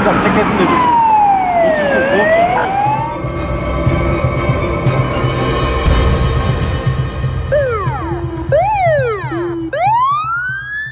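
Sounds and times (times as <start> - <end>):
siren wailing: 0.0 - 5.8, 7.4 - 10.9
music: 2.8 - 10.9.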